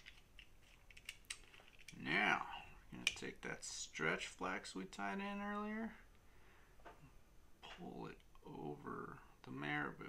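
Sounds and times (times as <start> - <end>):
small plastic clicks: 0.0 - 2.0.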